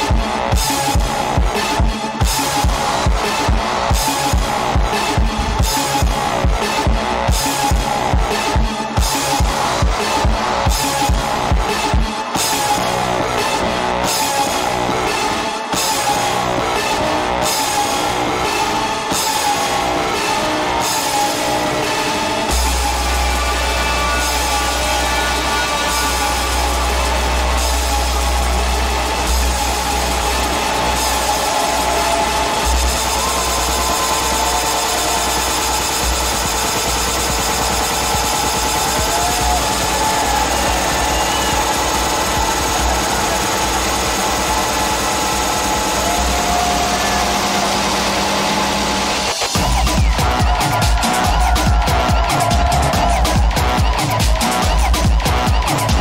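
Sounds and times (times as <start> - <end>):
electronic dance music: 0.0 - 56.0.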